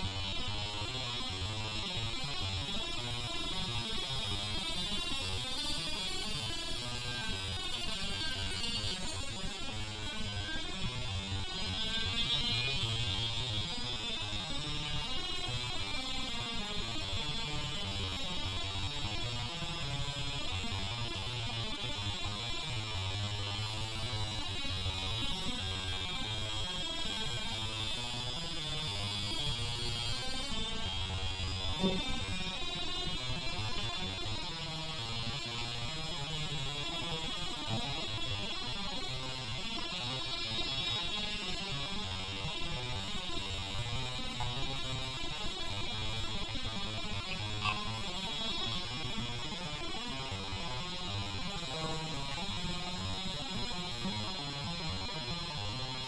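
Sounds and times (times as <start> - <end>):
high wavering whine: 0.0 - 56.0.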